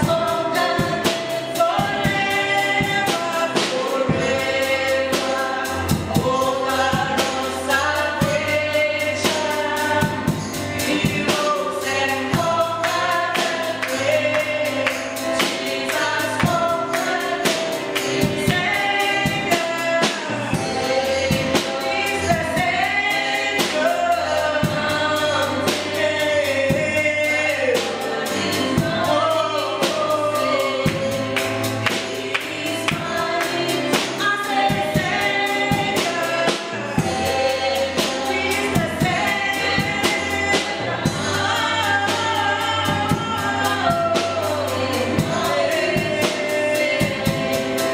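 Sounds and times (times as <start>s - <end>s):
band playing: 0.0s - 47.9s
drums and percussion beat: 0.0s - 47.9s
voices singing along: 0.0s - 47.9s
woman singing lead: 0.0s - 47.9s.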